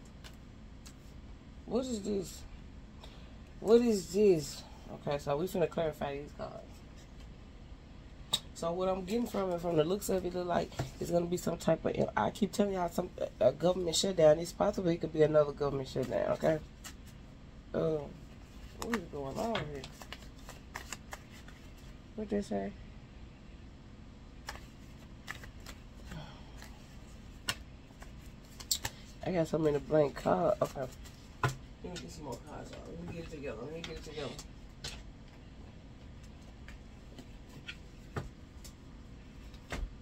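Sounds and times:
cards being shuffled: 15.9 - 17.2, 18.4 - 22.0, 24.4 - 35.4.

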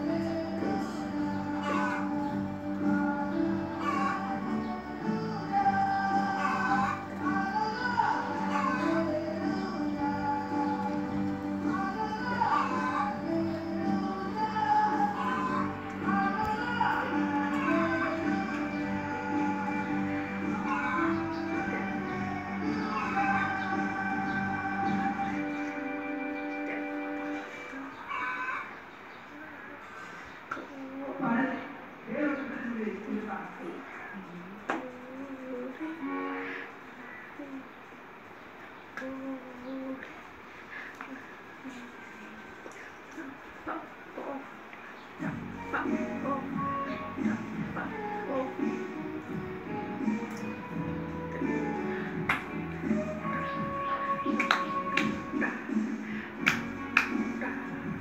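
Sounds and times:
girl singing unaccompanied: 0.0 - 28.2, 34.2 - 37.9, 38.9 - 40.4
sharp hand claps: 52.2 - 52.6, 54.3 - 55.6, 56.4 - 57.4.

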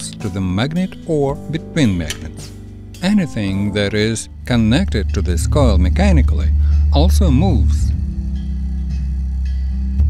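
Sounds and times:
background music low notes: 0.0 - 10.0.

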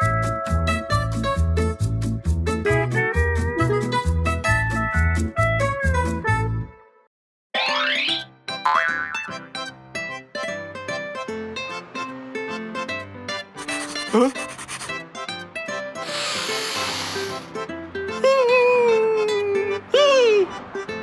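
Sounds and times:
bouncy plucked cartoon music: 0.0 - 7.0, 7.6 - 16.6, 17.2 - 21.0
cartoon character vocal noises: 13.6 - 14.6.

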